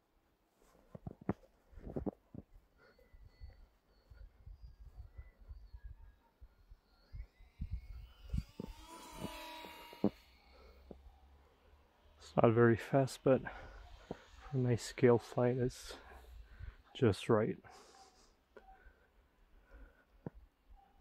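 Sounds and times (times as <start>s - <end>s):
wind rumble on microphone: 4.2s - 9.4s
electric motors whining: 6.6s - 18.2s.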